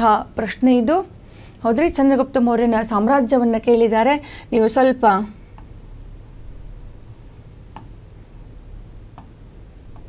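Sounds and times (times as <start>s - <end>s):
low room hum: 0.0s - 10.0s
light tap on screen: 7.7s - 7.9s.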